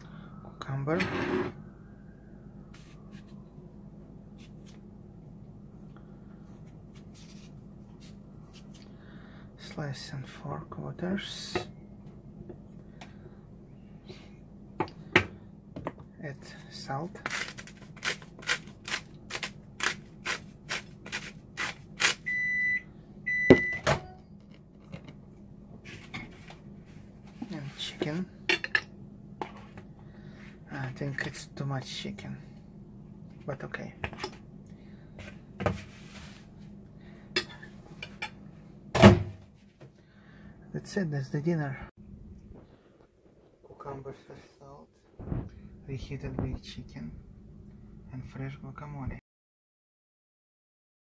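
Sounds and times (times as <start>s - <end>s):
steady low hum: 0.0s - 49.2s
knife slicing cucumber: 17.2s - 22.2s
salt grinder crunching: 17.2s - 22.2s
electronic appliance beeps: 22.2s - 24.2s.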